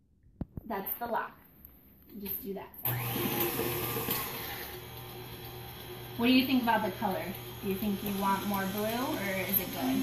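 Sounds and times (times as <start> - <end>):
stand mixer motor humming: 2.9 - 10.0.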